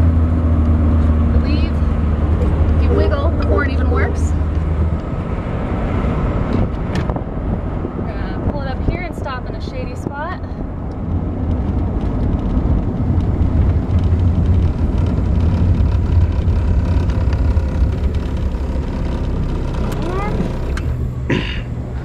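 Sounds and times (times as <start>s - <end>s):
car engine and road rumble: 0.0s - 22.0s
wind noise: 0.0s - 22.0s.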